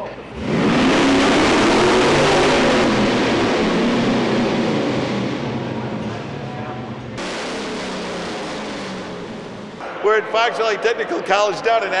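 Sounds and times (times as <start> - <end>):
car wheels turning dyno rollers: 0.0 - 11.0
steady rushing noise: 0.3 - 12.0.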